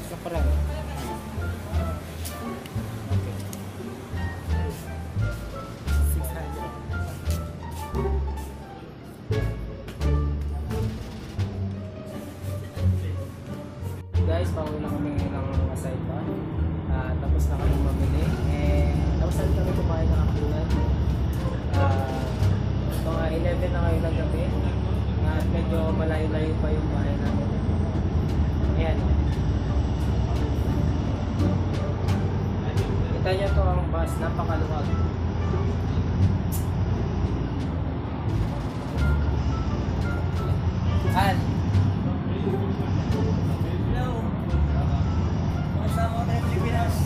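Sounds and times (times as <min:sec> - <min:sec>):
bus engine rumble: 0:00.0 - 0:47.0
music: 0:00.0 - 0:47.0
road noise: 0:00.0 - 0:47.0
voices: 0:10.4 - 0:47.0.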